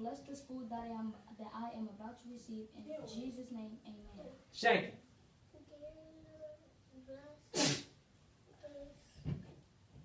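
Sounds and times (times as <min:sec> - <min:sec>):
hissing burst of breath: 0:07.5 - 0:08.0.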